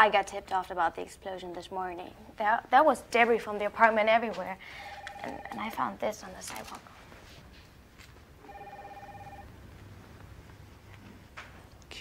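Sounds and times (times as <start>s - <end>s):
electronic telephone ringing: 4.8s - 5.8s, 8.4s - 9.5s.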